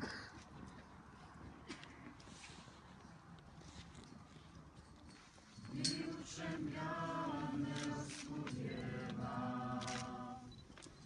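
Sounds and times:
murmur of outdoor gathering: 0.0 - 11.0
choir singing: 5.7 - 10.6.

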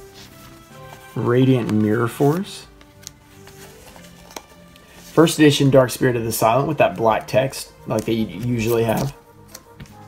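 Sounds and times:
quiet music with held tones: 0.0 - 10.0
cards clicking in plastic sleeve: 2.7 - 5.0, 6.5 - 10.0.

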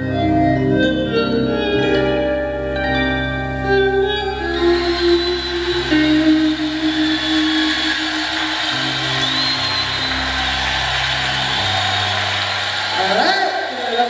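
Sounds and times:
jazz-blues band sustained notes: 0.0 - 12.3.

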